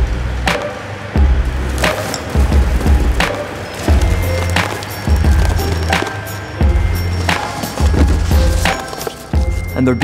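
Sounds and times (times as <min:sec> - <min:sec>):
cardboard cracking and crunching: 0:03.8 - 0:06.2, 0:07.0 - 0:09.6.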